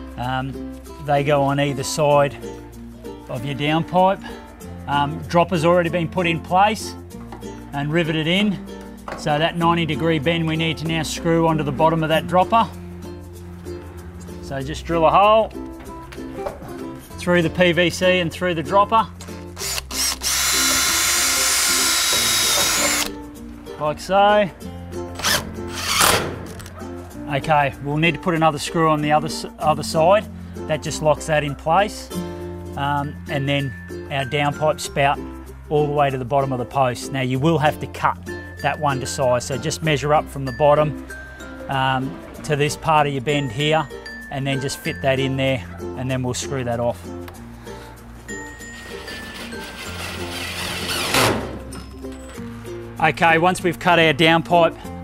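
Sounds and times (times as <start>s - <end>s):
background music: 0.0s - 55.0s
cordless drill driving screw: 19.6s - 23.1s, 25.2s - 26.7s, 48.8s - 51.4s.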